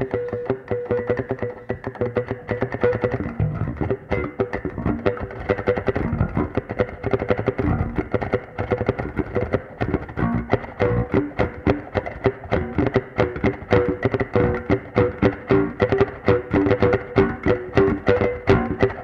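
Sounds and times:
electric bass guitar plucked: 0.0 - 19.0.

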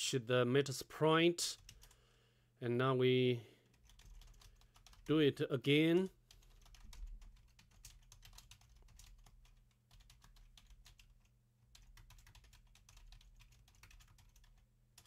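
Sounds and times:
typing on a computer keyboard: 1.6 - 2.0, 3.6 - 5.1, 6.2 - 15.0.

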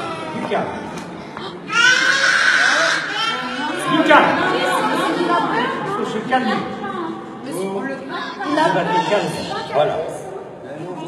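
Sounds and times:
people talking in echoing hall: 0.0 - 11.0.

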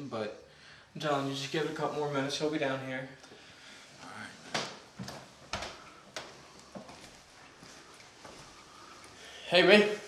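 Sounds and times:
footsteps on a staircase: 5.0 - 9.2.

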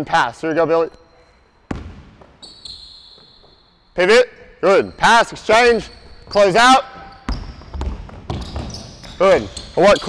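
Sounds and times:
sneakers squeaking on court: 0.9 - 10.0
basketball bounce on hardwood floor: 1.7 - 2.4, 7.0 - 9.2.

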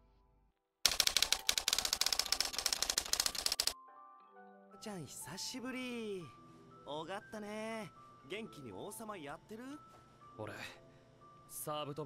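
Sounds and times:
rapid clatter of sharp clicks: 0.9 - 3.8.

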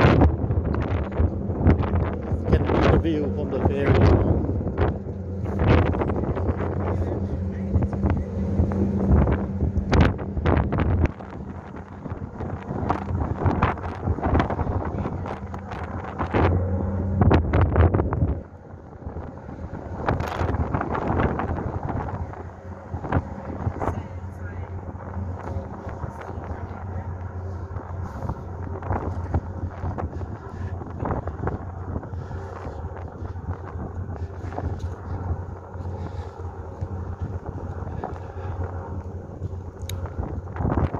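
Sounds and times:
ship engines humming: 0.0 - 40.9
wind buffeting microphone: 0.0 - 40.9.

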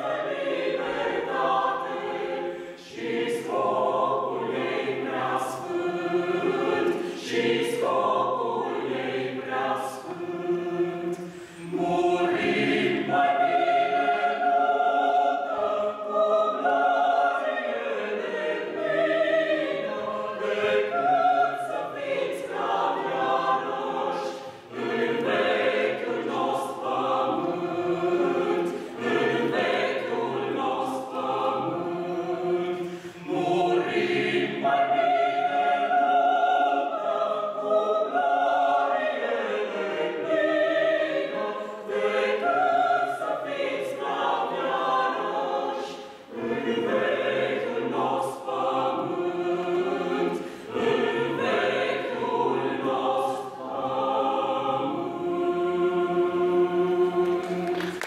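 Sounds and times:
mixed choir singing unaccompanied: 0.0 - 58.0.

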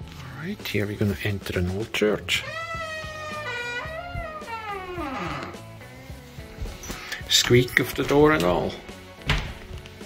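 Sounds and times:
wooden door creaking open: 2.3 - 6.0, 9.2 - 9.8.

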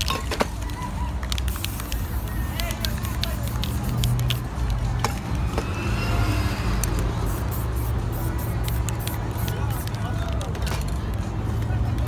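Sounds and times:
faint voices: 0.0 - 12.0
low street rumble: 0.0 - 12.0.

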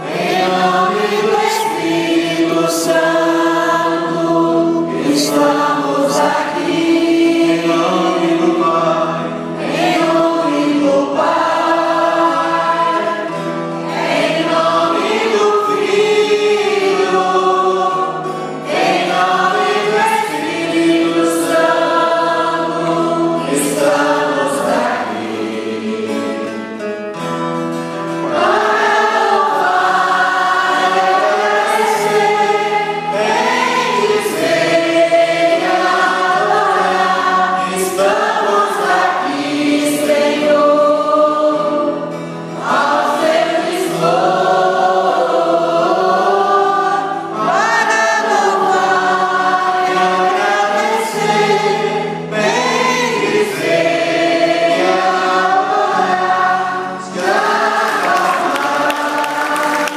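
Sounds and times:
congregation singing a hymn: 0.0 - 59.9
guitar accompaniment: 0.0 - 59.9.

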